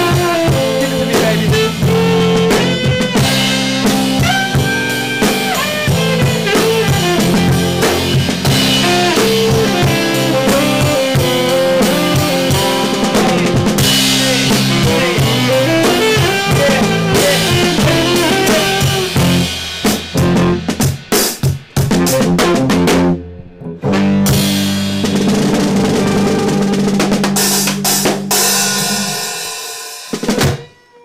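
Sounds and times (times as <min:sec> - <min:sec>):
saxophone: 0:00.0 - 0:20.7, 0:23.8 - 0:29.4
drum kit beat: 0:00.0 - 0:31.0
live band playing: 0:00.0 - 0:31.0.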